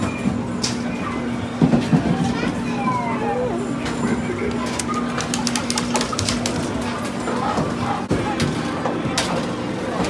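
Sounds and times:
children's voices and chatter: 0.7s - 9.2s.

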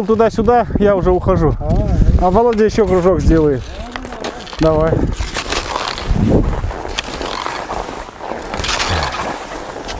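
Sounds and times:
ski poles crunching in snow: 1.8s - 9.9s
skis scraping on snow: 2.2s - 9.9s.

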